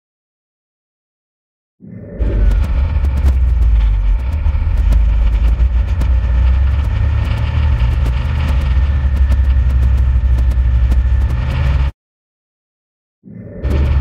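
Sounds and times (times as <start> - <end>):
snowmobile engine rumble: 2.0 - 11.9, 13.5 - 14.0
thin steady whine: 2.2 - 11.9.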